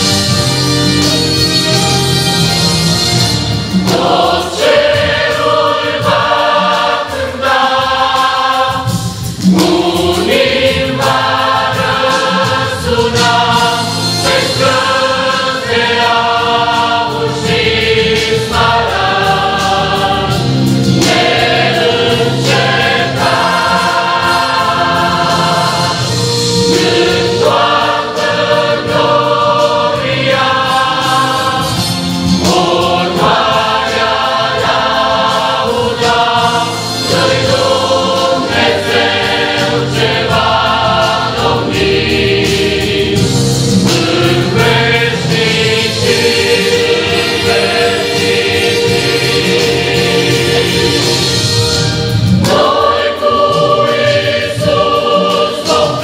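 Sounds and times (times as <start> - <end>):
choir singing a hymn: 0.0 - 56.0.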